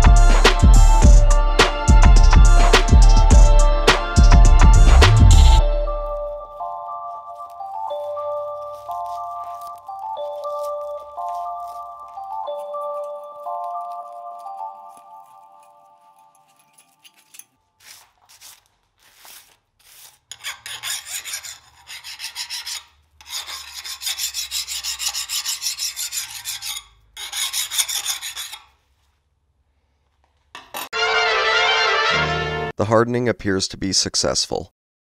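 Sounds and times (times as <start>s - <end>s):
loud music: 0.0s - 6.4s, 31.0s - 32.7s
file rasping on steel blade: 15.0s - 17.5s, 19.2s - 28.8s.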